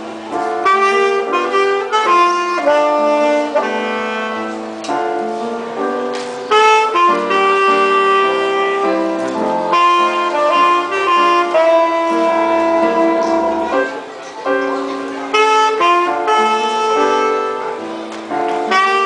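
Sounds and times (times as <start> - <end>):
alto saxophone jazz melody: 0.0 - 19.0
keyboard accompaniment: 0.0 - 19.0.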